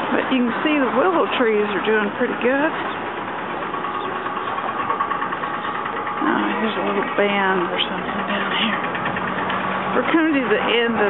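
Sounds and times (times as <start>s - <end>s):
street noise: 0.0s - 11.0s
vehicle engine humming: 0.0s - 11.0s.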